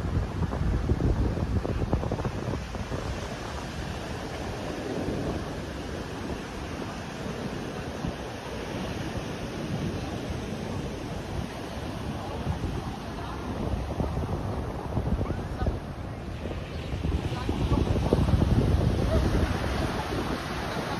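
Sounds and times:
surf breaking on beach: 0.0 - 20.9
wind on microphone: 0.0 - 20.9.

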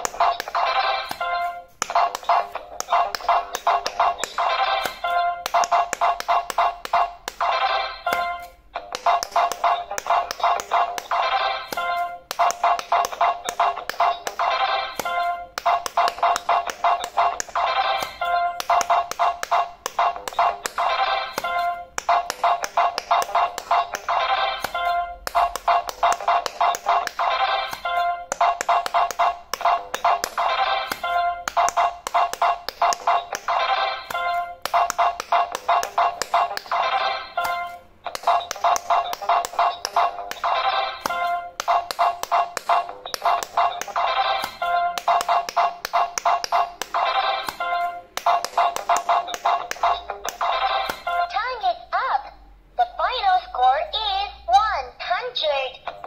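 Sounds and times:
chiptune-like tune: 0.0 - 51.4
taps of buttons: 0.0 - 51.5.

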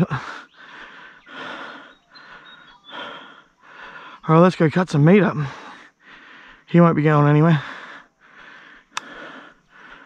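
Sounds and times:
man breathing hard: 0.0 - 4.3, 5.3 - 6.7, 7.4 - 10.0.

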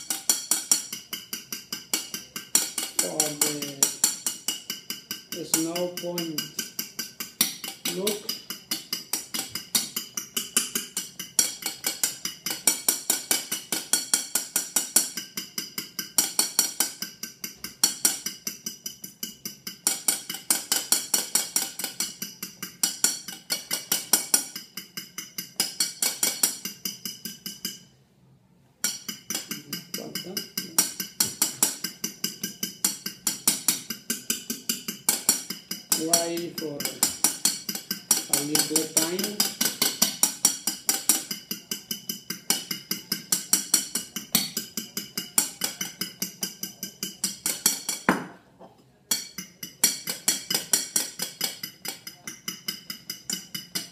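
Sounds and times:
fork beating eggs in bowl: 0.0 - 28.0, 28.8 - 48.2, 49.1 - 53.9.

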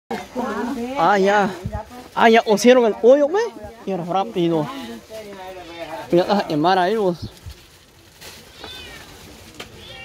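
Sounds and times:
cat meowing: 8.4 - 10.0.

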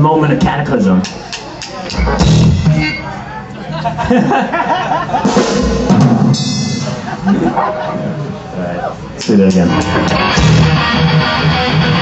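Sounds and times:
drum kit struck: 1.0 - 2.9, 5.2 - 7.8, 9.2 - 11.3.

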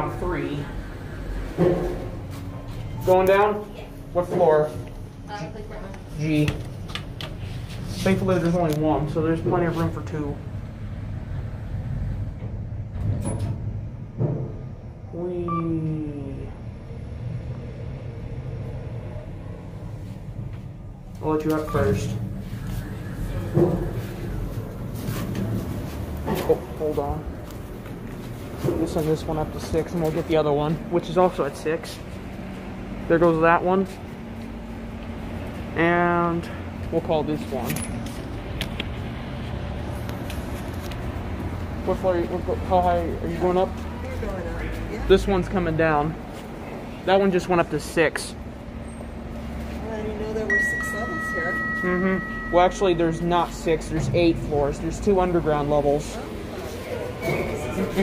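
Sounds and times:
low hum: 0.0 - 47.0, 47.6 - 58.0
elevator cab rumbling: 8.2 - 35.8, 48.3 - 58.0
brief falling tone: 50.5 - 53.2.

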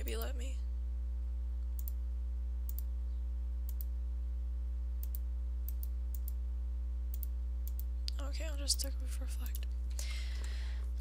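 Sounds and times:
low electrical hum: 0.0 - 11.0
computer mouse clicking: 1.8 - 2.0, 2.7 - 2.9, 3.7 - 3.9, 5.0 - 6.4, 7.1 - 7.9.

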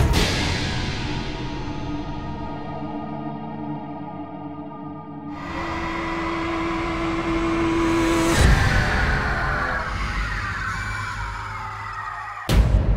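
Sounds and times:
noise riser over held tone: 5.3 - 9.7.

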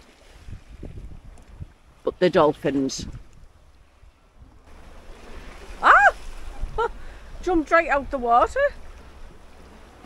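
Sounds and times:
boat moving over choppy sea: 0.0 - 10.0
wind on microphone: 0.0 - 10.0
person crying out in surprise: 5.8 - 6.2.

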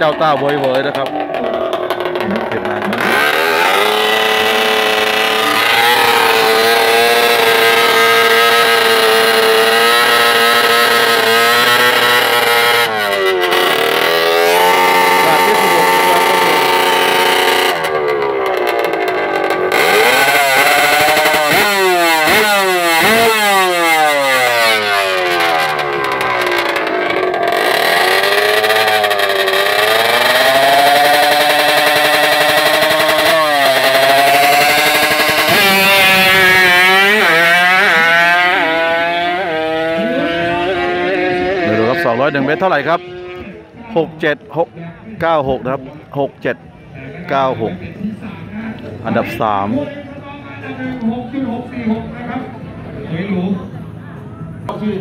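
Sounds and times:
motorcycle engine revving: 0.0 - 53.0.

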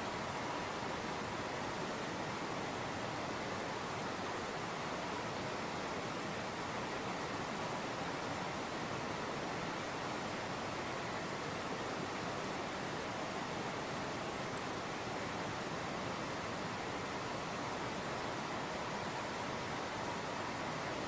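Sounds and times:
steady hiss: 0.0 - 21.0.

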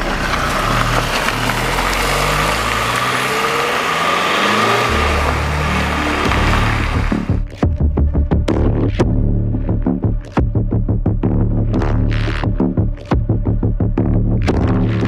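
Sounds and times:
dense noisy music track: 0.0 - 15.0
stepping bass line: 4.6 - 15.0.

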